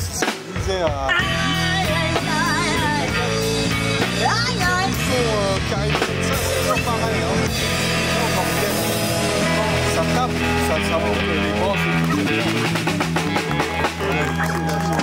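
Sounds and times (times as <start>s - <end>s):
drum kit: 0.0s - 15.0s
electric guitar: 1.1s - 15.0s.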